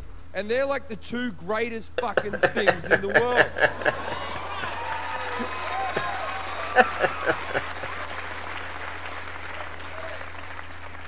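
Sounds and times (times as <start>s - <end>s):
audience applauding: 2.2s - 11.0s.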